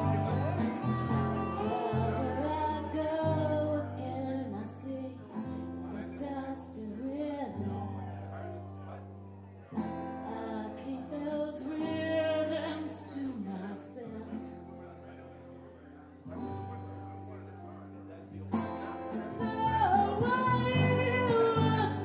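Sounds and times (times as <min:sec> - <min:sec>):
bass guitar: 0:00.0 - 0:13.5, 0:16.5 - 0:22.0
electric guitar: 0:00.0 - 0:15.6, 0:16.2 - 0:22.0
strummed acoustic guitar: 0:00.0 - 0:22.0
woman singing: 0:00.8 - 0:05.4, 0:06.0 - 0:07.8, 0:10.2 - 0:14.5, 0:19.2 - 0:22.0.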